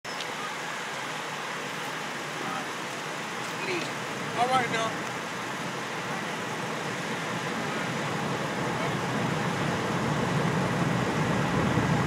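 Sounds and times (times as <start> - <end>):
faint voices talking: 0.1 - 9.9
roadside background hiss: 0.1 - 12.0.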